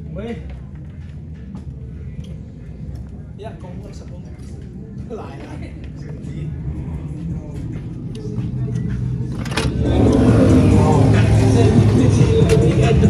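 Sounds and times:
voices: 1.6s - 13.0s
vehicle engine accelerating: 6.4s - 13.0s.

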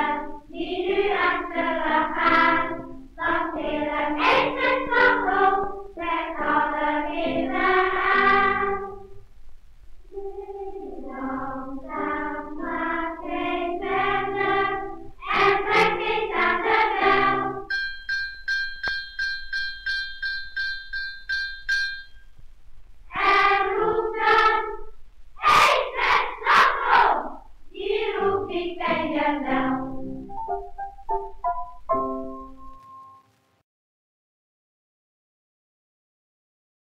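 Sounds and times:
children's choir singing: 0.0s - 9.2s, 10.0s - 17.7s, 23.1s - 30.7s
small bell struck rapidly: 17.7s - 22.3s.

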